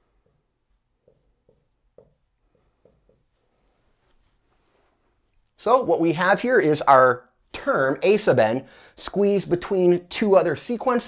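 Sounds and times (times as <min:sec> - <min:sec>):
marker writing on whiteboard: 0:00.0 - 0:04.4.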